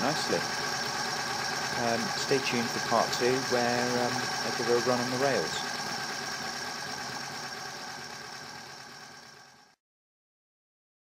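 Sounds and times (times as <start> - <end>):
model steam locomotive running: 0.0 - 9.8.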